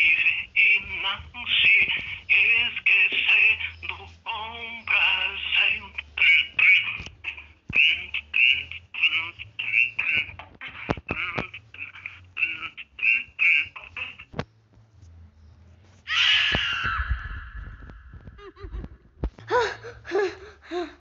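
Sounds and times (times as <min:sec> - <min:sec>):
high-pitched voices chattering: 0:00.0 - 0:14.5.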